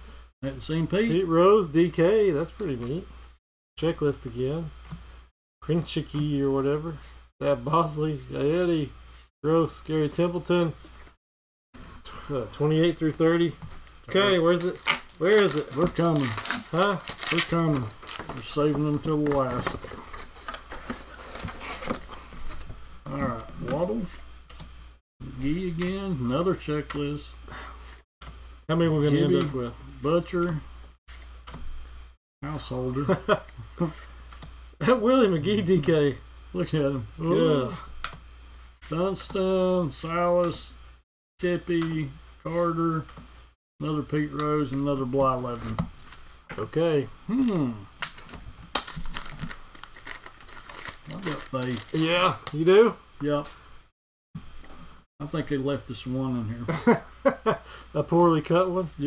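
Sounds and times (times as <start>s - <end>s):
waxed paper wrapper crinkling: 14.4s - 22.6s, 47.3s - 52.6s.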